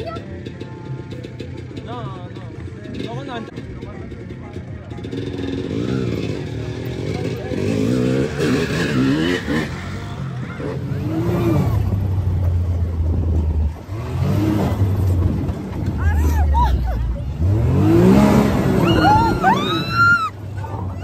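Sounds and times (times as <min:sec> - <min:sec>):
voices: 0:00.0 - 0:21.0
dirt bike engine revving: 0:04.2 - 0:12.4, 0:17.4 - 0:19.9.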